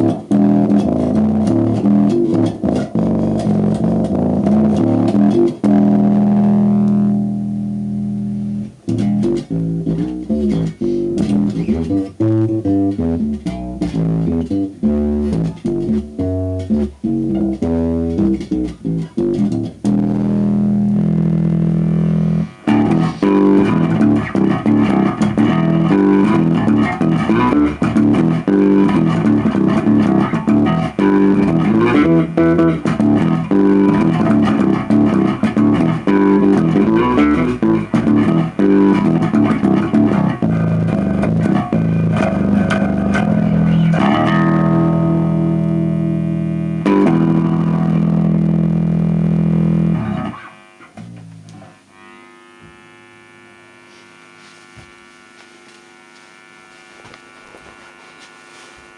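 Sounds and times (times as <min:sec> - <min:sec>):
electric bass with octave effect: 0:00.0 - 0:58.9
low steady amp hum: 0:00.0 - 0:58.9.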